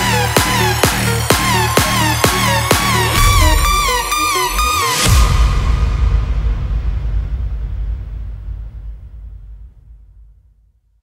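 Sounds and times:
deep bass impact rumble: 0:03.1 - 0:11.0.

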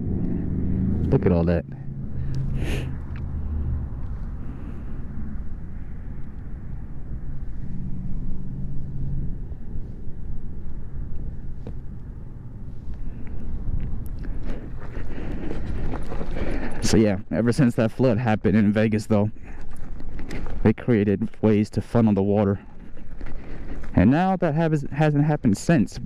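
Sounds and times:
wind on microphone: 0:02.6 - 0:16.8
tyres rolling over gravel: 0:14.4 - 0:17.2.

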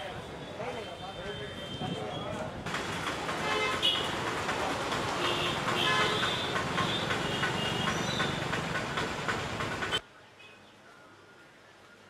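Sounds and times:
chatter of passers-by: 0:00.0 - 0:03.4.

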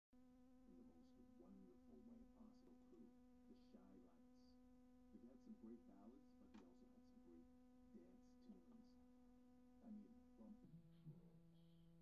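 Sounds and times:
low buzzing hum: 0:00.2 - 0:12.0
faint indistinct voices: 0:00.6 - 0:12.0.

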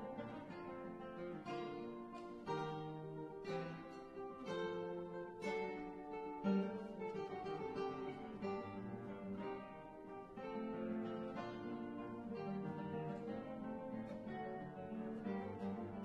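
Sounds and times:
classical guitar duo: 0:00.0 - 0:16.0.

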